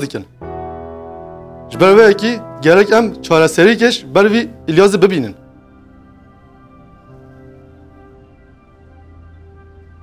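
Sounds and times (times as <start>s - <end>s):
sustained held notes: 0.3s - 10.0s
low bass drone: 0.4s - 10.0s.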